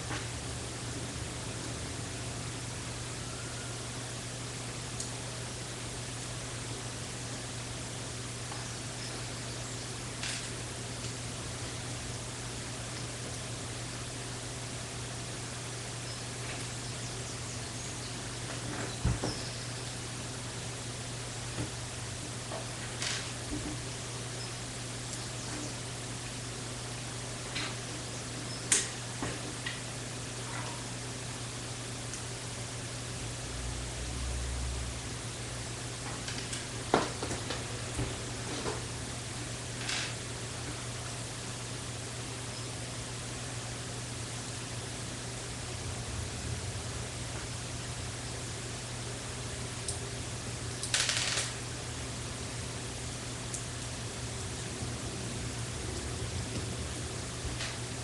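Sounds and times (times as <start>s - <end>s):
steady hiss and hum: 0.0s - 58.0s.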